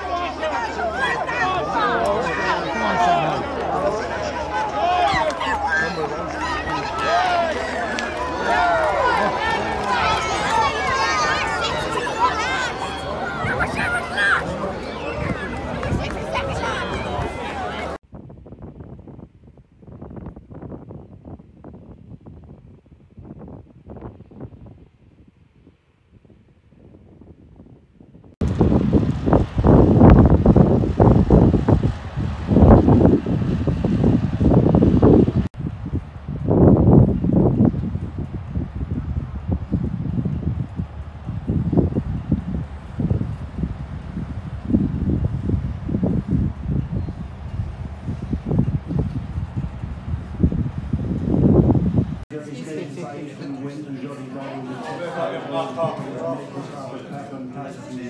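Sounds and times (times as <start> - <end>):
wind gusts buffeting microphone: 0.0 - 52.2.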